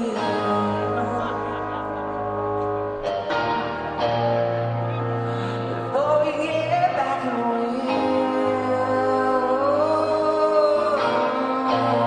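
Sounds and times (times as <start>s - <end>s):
ringing electric guitar chords: 0.0s - 12.0s.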